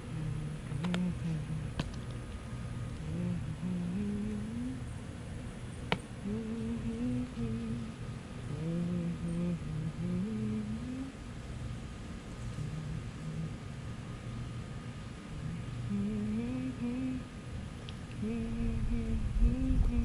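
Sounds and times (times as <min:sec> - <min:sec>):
person humming a tune: 0:00.0 - 0:01.8, 0:03.0 - 0:04.9, 0:06.2 - 0:11.2, 0:12.6 - 0:13.7, 0:15.3 - 0:17.3, 0:18.2 - 0:20.0.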